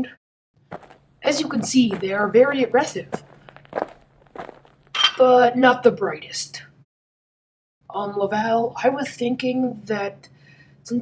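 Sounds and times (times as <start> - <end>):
light footsteps: 0.7 - 5.0.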